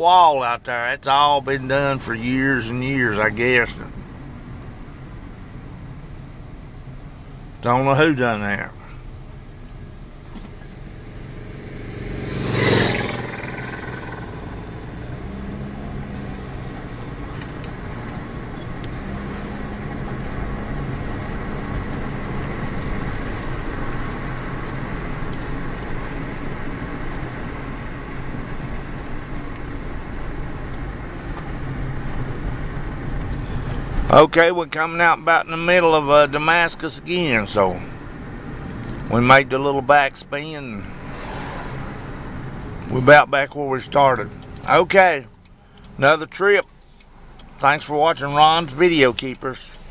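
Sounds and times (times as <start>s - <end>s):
car driving heard from inside: 0.0s - 49.9s.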